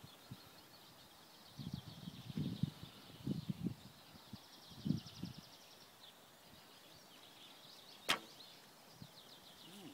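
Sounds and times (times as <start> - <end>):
bowstring snap: 8.1 - 8.3.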